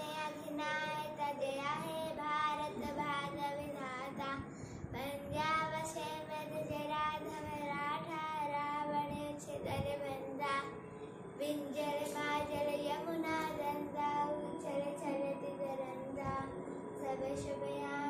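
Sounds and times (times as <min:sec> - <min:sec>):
boy singing: 0:00.0 - 0:10.8, 0:11.4 - 0:18.0.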